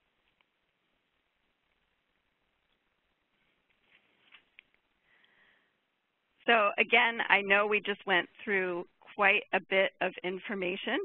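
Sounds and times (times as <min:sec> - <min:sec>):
soft breath: 0:03.3 - 0:05.9.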